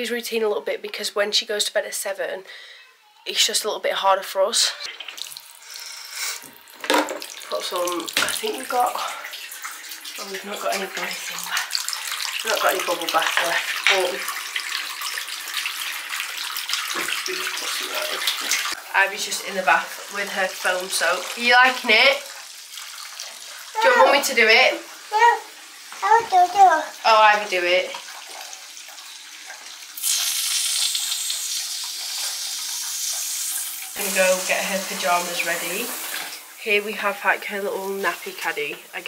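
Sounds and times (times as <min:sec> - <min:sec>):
tap water filling bathtub: 0:04.8 - 0:39.0.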